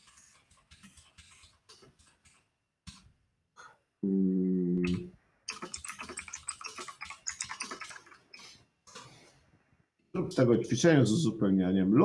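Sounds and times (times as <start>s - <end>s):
keyboard typing clicks: 5.5s - 8.5s.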